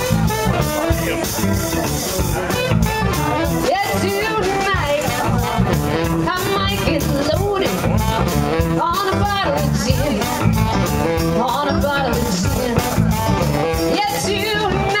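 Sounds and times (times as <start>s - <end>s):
drums: 0.0s - 15.0s
electric guitar: 0.0s - 15.0s
keyboard: 0.0s - 15.0s
saxophone: 0.0s - 15.0s
woman singing: 3.6s - 5.3s, 6.2s - 7.9s, 8.7s - 10.4s, 11.3s - 13.0s, 13.9s - 15.0s.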